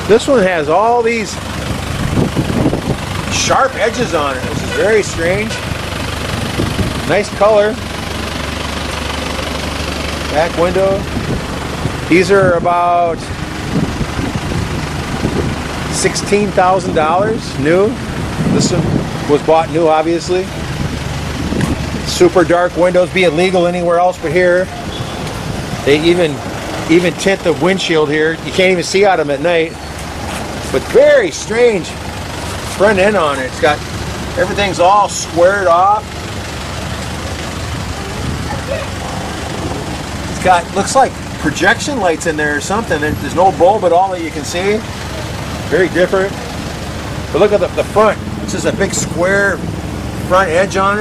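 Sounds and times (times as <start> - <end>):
vehicle engines rumbling: 0.0 - 51.0
faint voices: 37.2 - 46.5.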